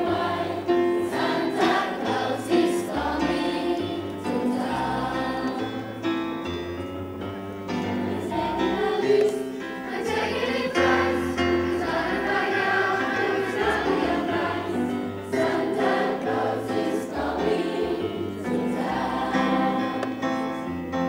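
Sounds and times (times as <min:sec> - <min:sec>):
choir of young voices singing: 0:00.0 - 0:06.6, 0:07.7 - 0:21.0.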